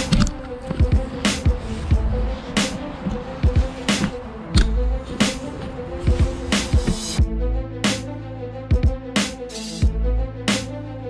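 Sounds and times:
electronic hip-hop beat: 0.0 - 11.0
snare hits: 7.8 - 8.1, 9.2 - 9.9, 10.5 - 10.7.

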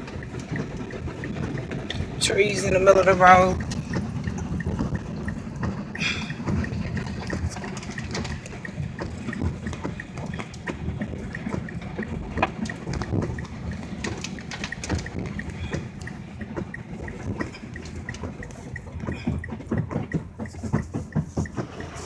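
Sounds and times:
car rumble: 0.0 - 22.0
water splashing against car: 0.0 - 22.0.

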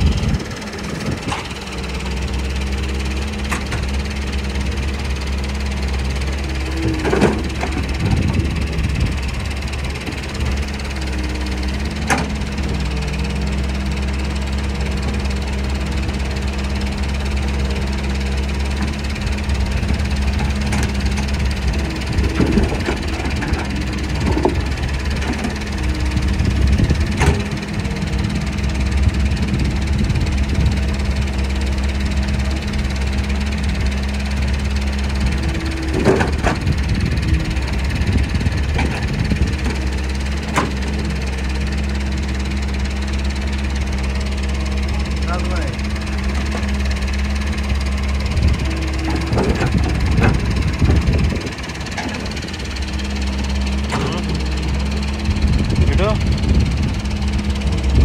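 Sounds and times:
excavator diesel engine running: 0.0 - 58.0.

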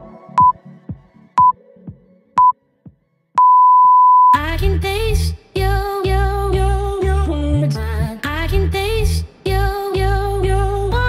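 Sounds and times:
music with singing: 0.0 - 3.1, 4.4 - 11.0
interval timer long beep: 3.4 - 4.4.

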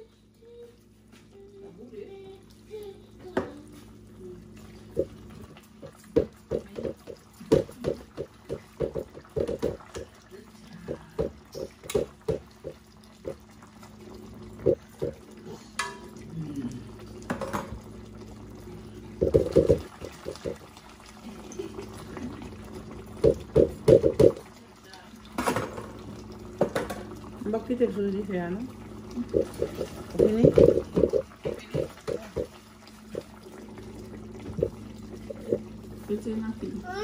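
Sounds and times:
stew bubbling in a pot: 0.0 - 37.0.

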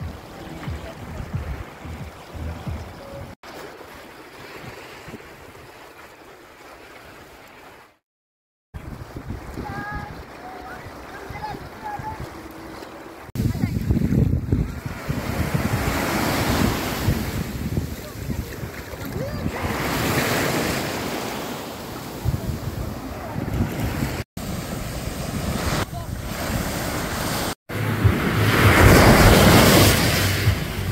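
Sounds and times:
wind buffeting the microphone: 0.0 - 3.3, 8.8 - 12.4, 13.4 - 20.5, 22.1 - 27.4
sea waves breaking: 0.0 - 8.0, 8.7 - 30.9.

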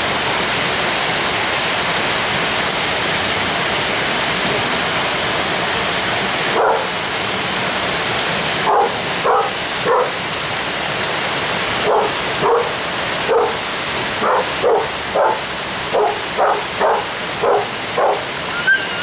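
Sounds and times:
small waterfall rushing: 0.0 - 19.0
dog barking: 6.5 - 6.9, 8.6 - 10.2, 11.8 - 13.6, 14.2 - 18.2.

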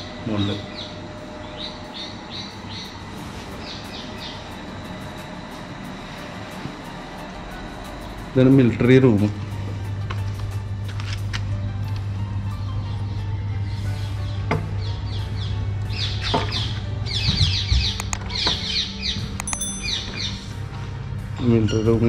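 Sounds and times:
steady low hum: 0.0 - 22.0
small birds chirping: 0.4 - 4.6.

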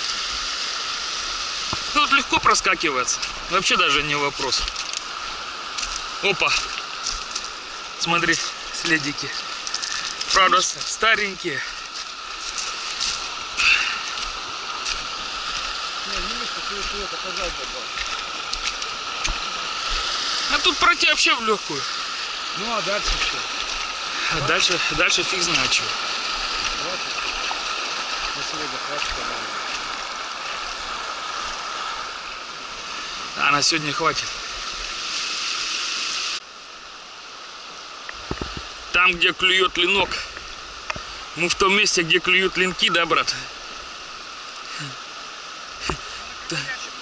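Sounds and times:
river rushing over gravel: 0.0 - 47.0
footsteps on gravel: 5.7 - 7.6, 8.2 - 11.0, 11.6 - 20.7.

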